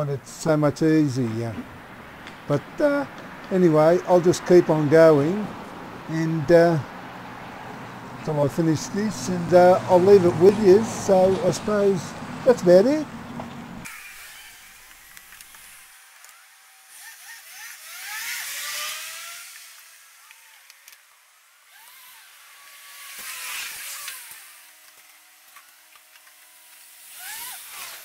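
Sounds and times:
passing traffic: 0.0 - 14.0.

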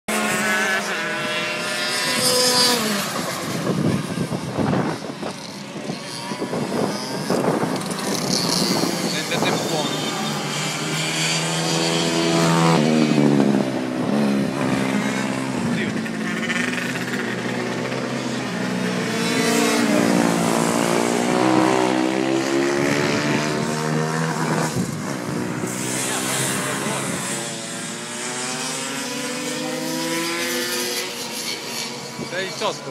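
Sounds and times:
kart engine revving: 0.1 - 32.9.

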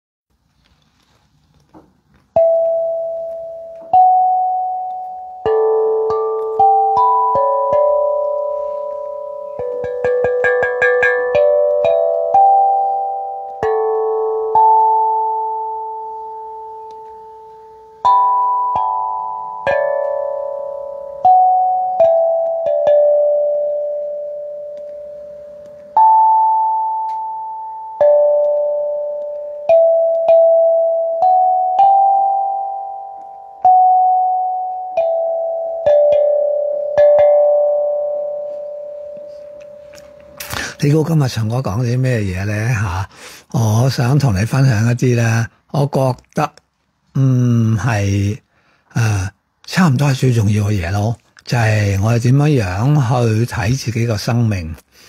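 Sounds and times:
steel tongue drum notes: 2.3 - 42.1.

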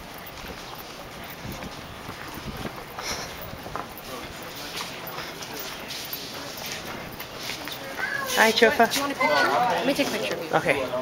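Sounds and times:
flip-flop footsteps on concrete: 0.0 - 10.6
faint voices: 0.0 - 11.0.

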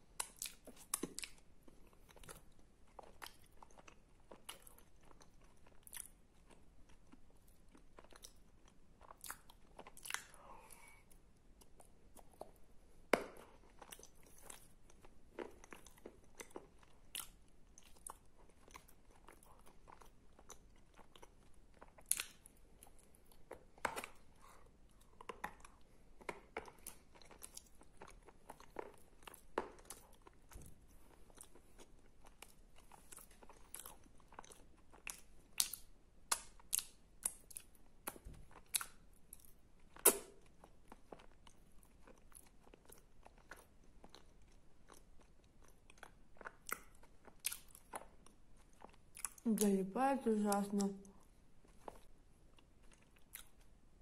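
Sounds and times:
sticky mouth clicks and smacks: 32.2 - 41.5, 45.6 - 49.4.

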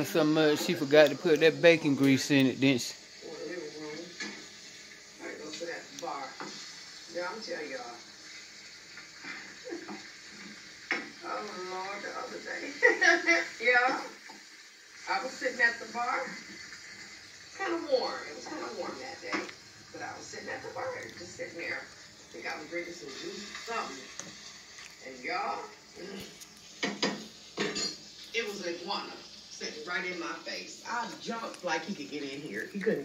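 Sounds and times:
speech from television speaker: 0.0 - 4.4, 5.2 - 8.1, 11.1 - 14.3, 15.0 - 16.6, 17.5 - 24.3, 25.0 - 26.4, 28.3 - 33.0.

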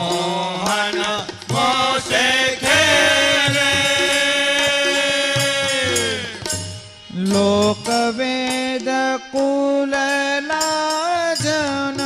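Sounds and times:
harmonium melody: 0.0 - 12.0
tabla strokes: 0.0 - 12.0.

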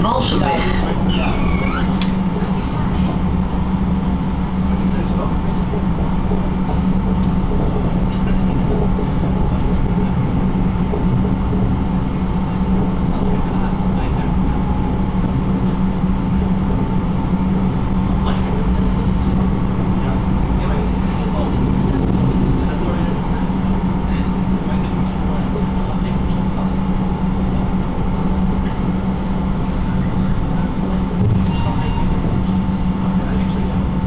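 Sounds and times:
faint constant whine: 0.0 - 34.0
tram rumbling: 0.0 - 34.0.

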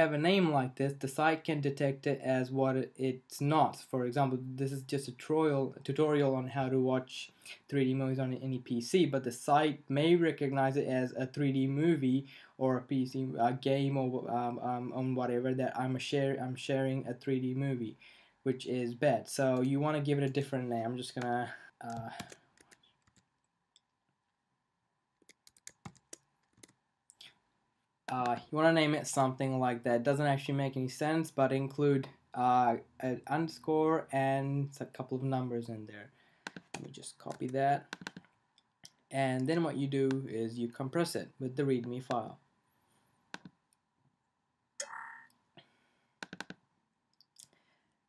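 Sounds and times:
computer mouse clicks: 25.2 - 26.8, 36.4 - 38.7, 43.3 - 43.8, 46.2 - 46.6.

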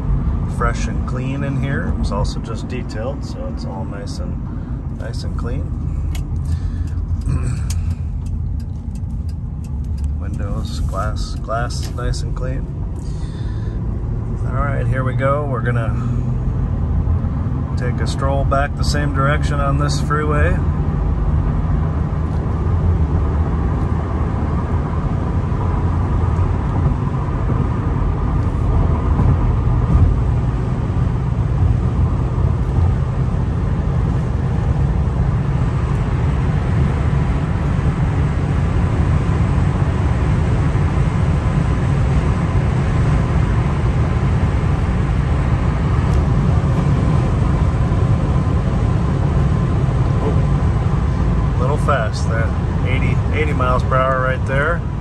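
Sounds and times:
tyre and road roar: 0.0 - 55.0.

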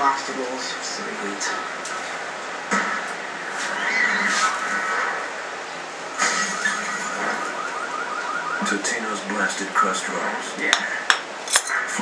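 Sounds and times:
television commercial audio: 0.0 - 12.0.

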